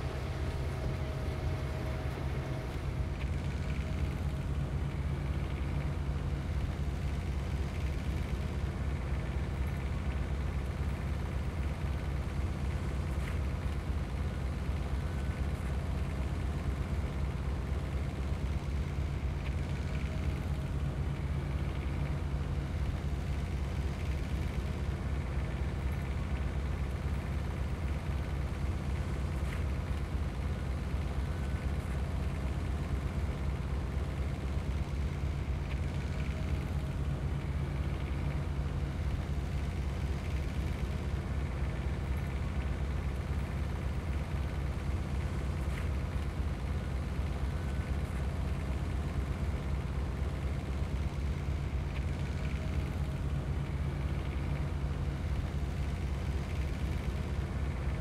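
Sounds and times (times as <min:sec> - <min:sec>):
diesel engine droning: 0:00.0 - 0:58.0.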